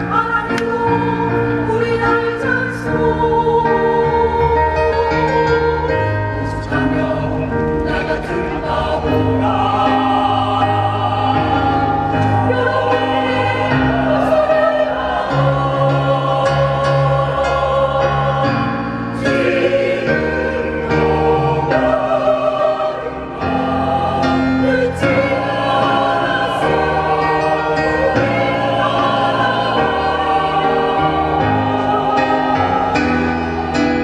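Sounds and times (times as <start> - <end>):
mixed choir singing in harmony: 0.0 - 34.0.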